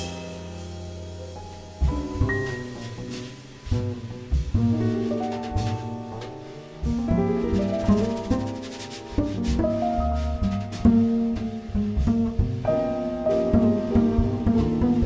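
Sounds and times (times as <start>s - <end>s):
drum kit hits: 0.0s - 8.0s, 9.3s - 15.0s
grand piano chords: 0.0s - 15.0s
plucked double bass: 0.0s - 15.0s.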